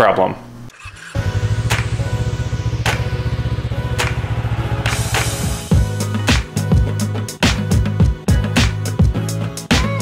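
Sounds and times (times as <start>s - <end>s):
fast low pulsing intro music: 0.8s - 8.0s
sharp swish hit: 1.2s - 6.7s.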